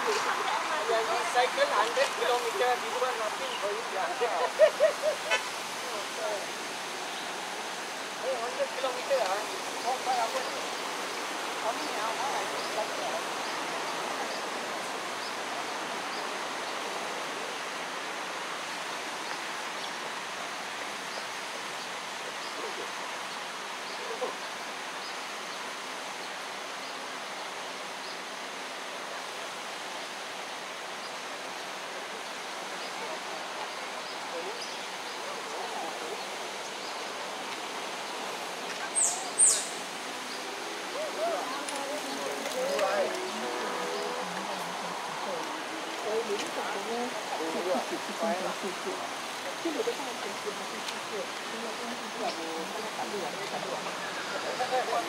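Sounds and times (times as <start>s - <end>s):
flowing water rushing: 0.0s - 55.0s.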